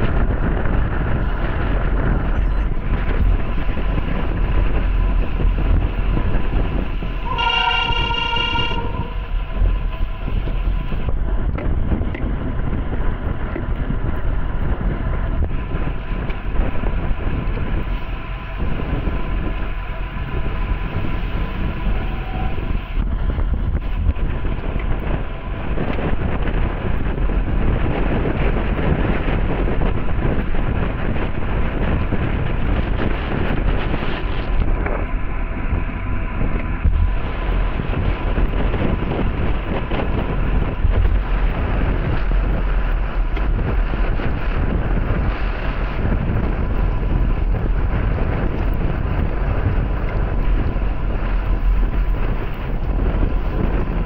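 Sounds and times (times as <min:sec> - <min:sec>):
wind buffeting microphone: 0:00.0 - 0:54.0
horn sounding: 0:07.2 - 0:09.6, 0:21.8 - 0:22.8.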